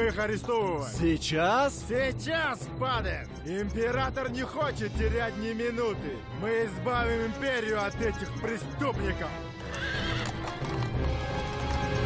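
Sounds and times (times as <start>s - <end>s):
film score music: 0.0s - 12.0s
horse whinnying: 9.6s - 10.8s
hooves clopping: 9.6s - 12.0s.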